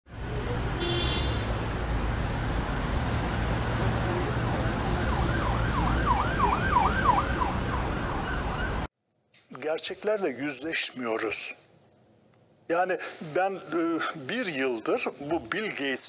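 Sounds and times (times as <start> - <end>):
city traffic rumble: 0.1 - 8.9
emergency siren wailing: 3.7 - 8.9.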